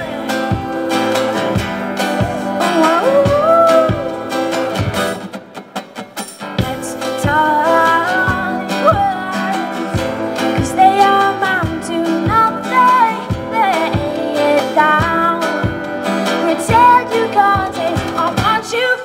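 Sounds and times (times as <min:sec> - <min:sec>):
woman singing into a microphone: 0:00.0 - 0:05.0, 0:06.6 - 0:19.0
strummed guitar: 0:00.0 - 0:19.0.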